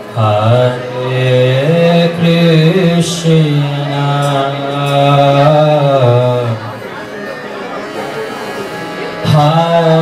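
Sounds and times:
man chanting through microphone: 0.0 - 6.8, 9.2 - 10.0.

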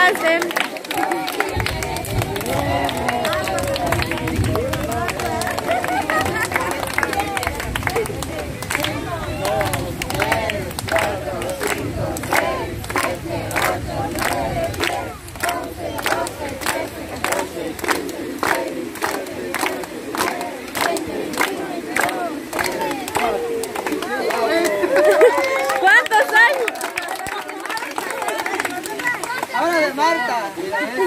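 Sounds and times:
group singing birthday song: 0.0 - 25.2
people clapping in time: 0.0 - 30.4.

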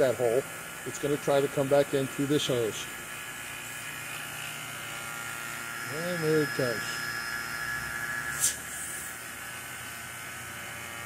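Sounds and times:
vacuum pump electric whir: 0.0 - 11.0.

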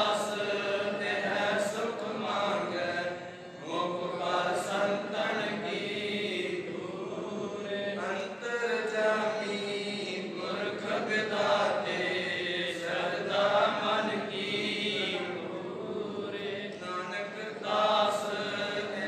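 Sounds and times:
man chanting through microphone: 0.0 - 19.0.

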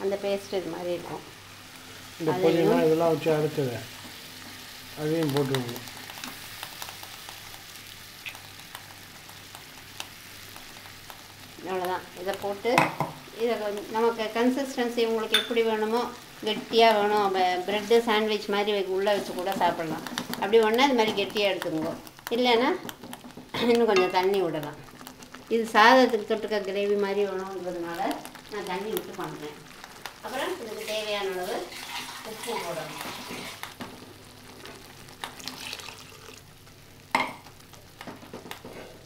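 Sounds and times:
gravy sizzling in oil: 0.0 - 39.0
small crackling pops: 0.1 - 39.0
person speaking: 2.2 - 3.8.

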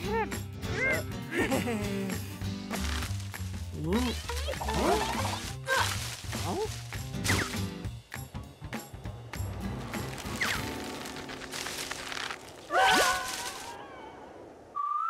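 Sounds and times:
cartoon comedy music: 0.0 - 2.6, 3.8 - 7.6
sharp whacks: 5.7 - 7.7
falling whistle glides: 14.7 - 15.0
rising wavering whistle tone: 14.7 - 15.0.

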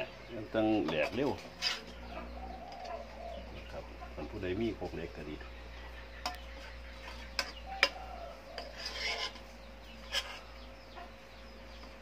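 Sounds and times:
faint bird calls: 1.5 - 4.5, 5.2 - 12.0.

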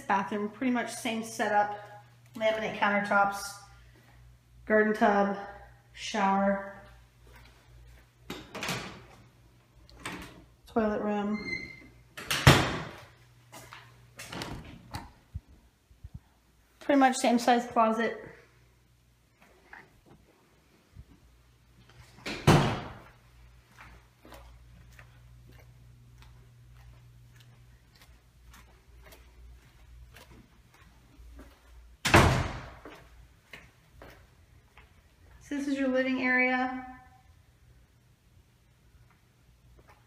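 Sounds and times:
steady low hum: 0.0 - 40.0
light footsteps: 6.8 - 8.3, 12.9 - 16.8, 22.9 - 32.0, 32.6 - 35.4.

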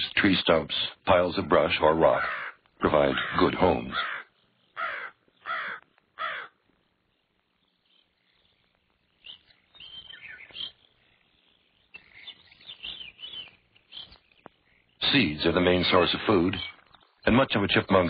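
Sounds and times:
faint chirping calls: 0.0 - 18.0
harsh animal calls: 1.9 - 6.6.

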